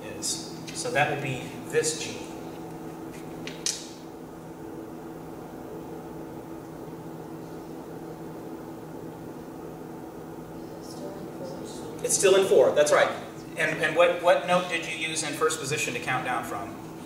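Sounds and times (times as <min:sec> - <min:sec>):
low room hum: 0:00.0 - 0:17.0.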